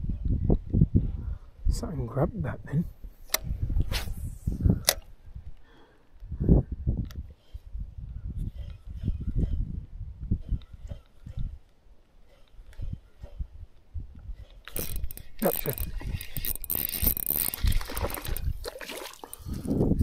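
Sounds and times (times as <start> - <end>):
fishing reel whirring: 14.7 - 18.6.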